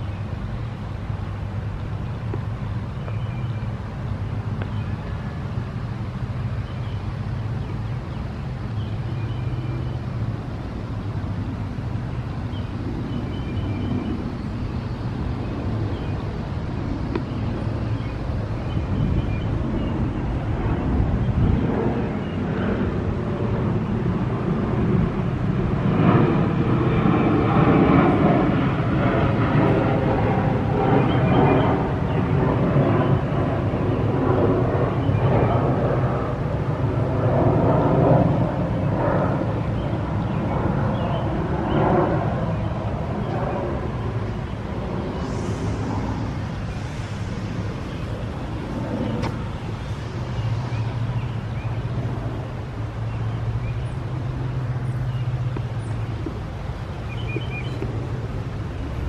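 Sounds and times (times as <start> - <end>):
distant traffic rumble: 0.0 - 59.0
vehicle passing: 43.7 - 55.5.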